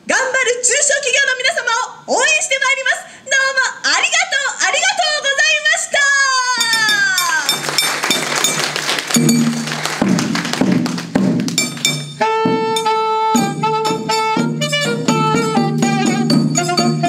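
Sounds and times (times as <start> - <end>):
drums beating a rhythm: 6.7 - 17.0
alto saxophone melody: 12.2 - 17.0.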